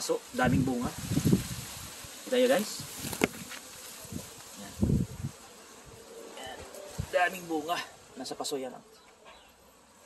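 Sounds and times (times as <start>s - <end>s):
wind buffeting microphone: 0.4s - 2.0s, 2.7s - 6.0s.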